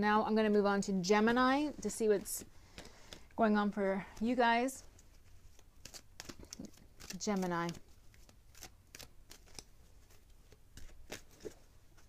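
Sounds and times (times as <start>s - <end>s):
cards being shuffled: 4.2s - 12.0s.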